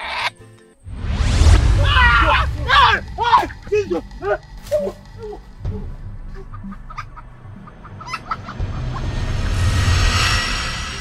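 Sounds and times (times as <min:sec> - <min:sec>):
rushing noise with deep rumble: 0:00.8 - 0:05.7, 0:08.7 - 0:11.0
burst of flame: 0:00.9 - 0:04.2
chicken clucking: 0:06.3 - 0:09.2.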